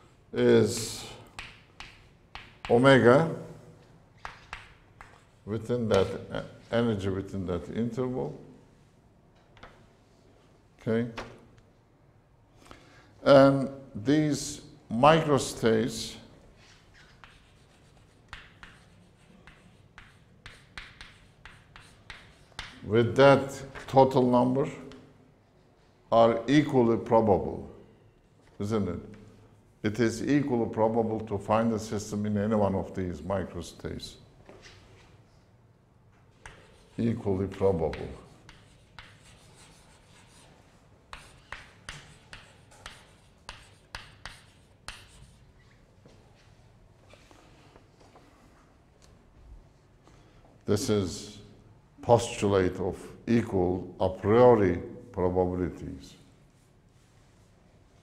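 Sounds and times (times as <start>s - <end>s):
chalk tapping on chalkboard: 0.7s - 2.8s, 4.2s - 5.4s, 17.0s - 22.8s, 36.3s - 45.4s
chalk scratching on chalkboard: 16.6s - 22.8s, 36.4s - 45.6s.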